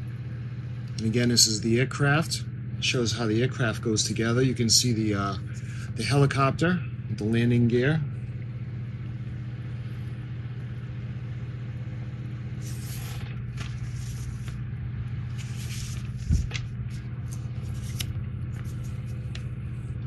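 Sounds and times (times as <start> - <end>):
steady low hum: 0.0 - 20.0
paper rustling: 12.6 - 14.6, 15.2 - 19.5.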